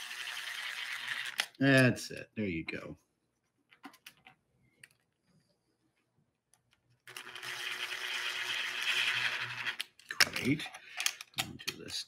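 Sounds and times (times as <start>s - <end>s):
drill motor whirring: 7.2s - 9.8s.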